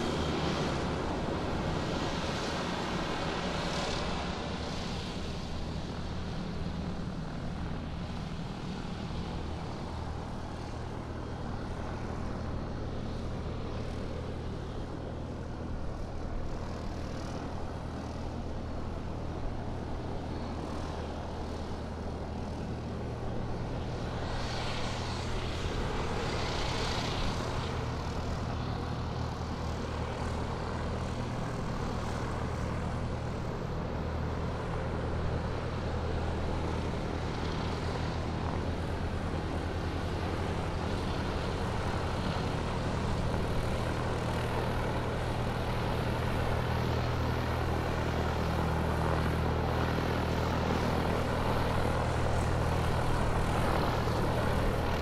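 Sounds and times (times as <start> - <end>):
low engine drone: 0.0 - 55.0.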